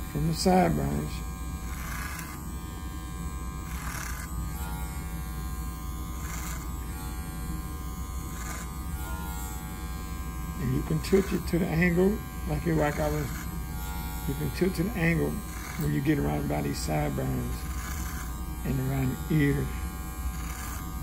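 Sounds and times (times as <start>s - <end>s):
electric hair clippers running: 0.0s - 21.0s
clipper blade hissing through hair: 1.7s - 2.4s, 3.7s - 4.3s.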